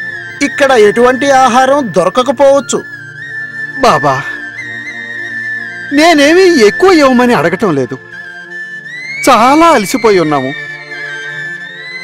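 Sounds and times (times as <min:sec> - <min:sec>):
man speaking: 0:00.4 - 0:02.9, 0:03.8 - 0:04.4, 0:05.9 - 0:08.0.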